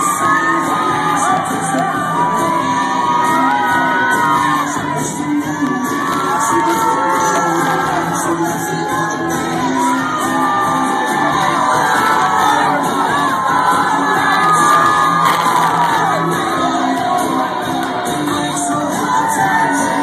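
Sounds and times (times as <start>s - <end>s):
crowd shouting and whooping: 0.0s - 20.0s
loud music: 0.0s - 20.0s.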